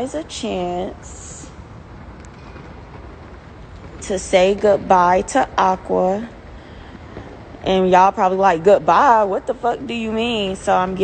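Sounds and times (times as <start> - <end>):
low rumble and hiss: 0.0 - 11.0.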